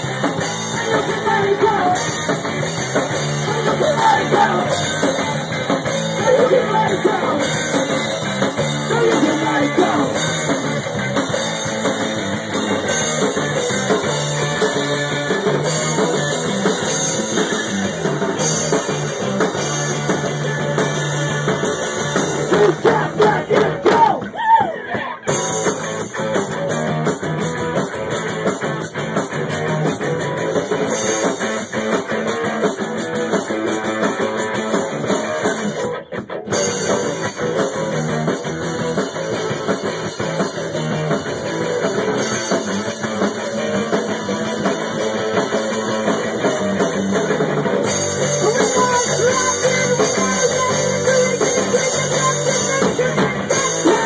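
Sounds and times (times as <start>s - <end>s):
bass guitar: 0.0s - 54.0s
drum kit: 0.0s - 54.0s
electric guitar: 0.0s - 54.0s.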